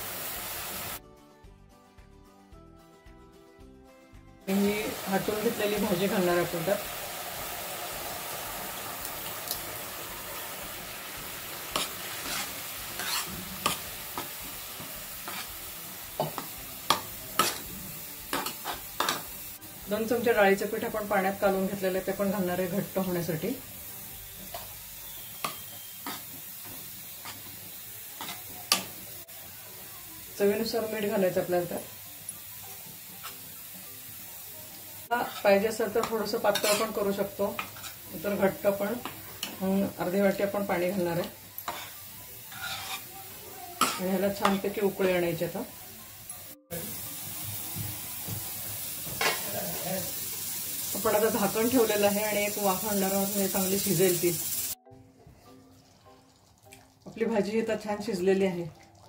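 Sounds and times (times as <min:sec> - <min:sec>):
curry sizzling: 0:00.0 - 0:01.0, 0:04.4 - 0:59.0
ladle scraping and knocking pan: 0:11.7 - 0:14.3, 0:36.5 - 0:36.9, 0:41.7 - 0:43.0.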